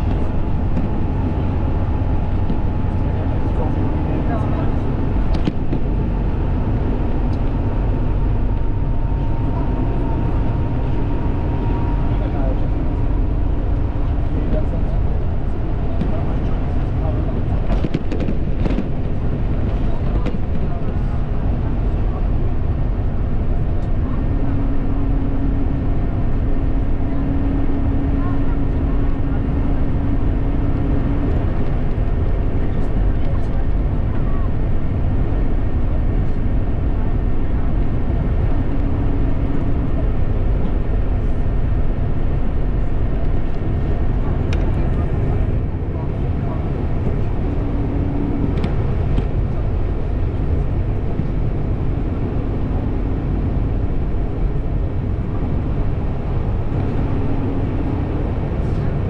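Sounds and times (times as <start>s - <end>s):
car road and engine noise: 0.0s - 59.0s
low hum: 0.0s - 59.0s.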